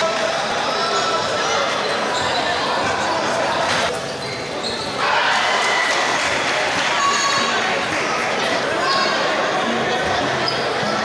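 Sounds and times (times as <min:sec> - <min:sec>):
crowd chatter in echoing hall: 0:00.0 - 0:11.0.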